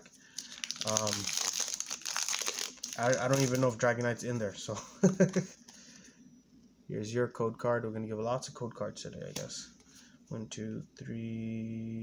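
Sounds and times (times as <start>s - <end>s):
foil and plastic packaging crinkling: 0.3s - 4.2s.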